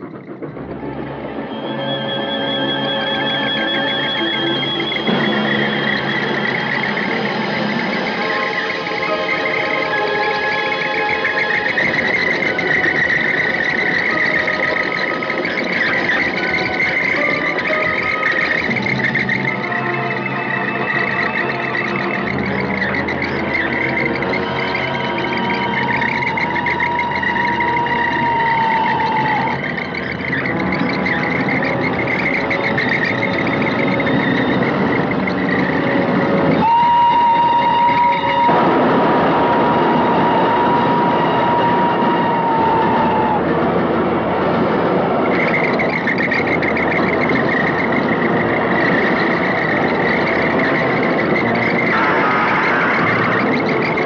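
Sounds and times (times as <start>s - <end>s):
dramatic orchestral music: 0.0s - 36.7s, 49.8s - 54.0s
approaching steam train: 0.0s - 54.0s
steam locomotive whistle: 0.1s - 43.8s, 44.4s - 54.0s.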